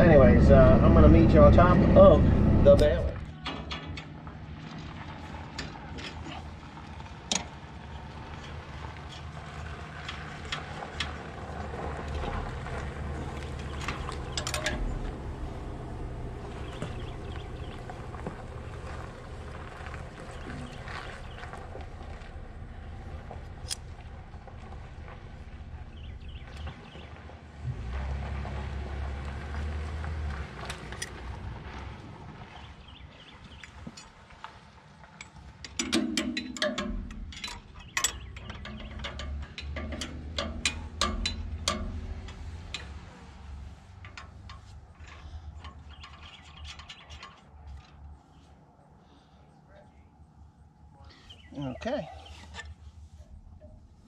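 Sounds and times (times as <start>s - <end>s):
metallic clanks from hand tools: 13.8s - 14.9s, 35.2s - 43.1s.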